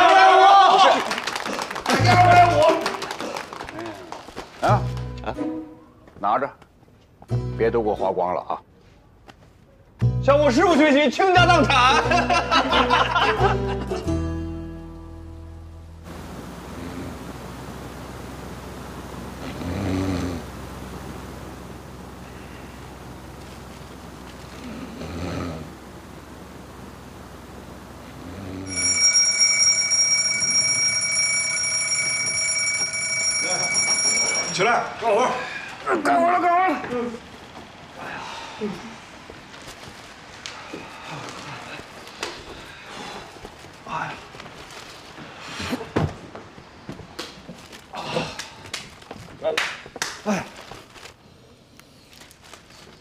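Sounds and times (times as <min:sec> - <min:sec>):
alarm clock bell ringing: 0:28.6 - 0:35.0.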